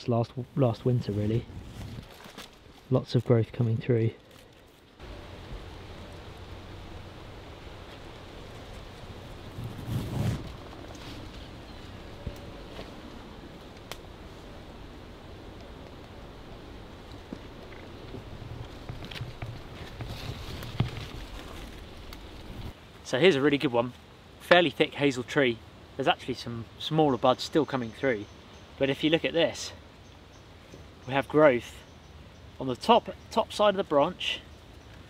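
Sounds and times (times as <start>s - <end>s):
rustle: 0.0s - 35.0s
steady soft hiss: 0.0s - 35.0s.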